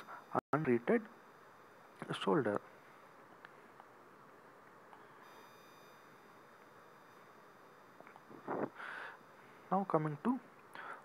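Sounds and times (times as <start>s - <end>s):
faint room hiss: 0.0s - 11.0s
high-pitched electronic whine: 4.9s - 10.5s.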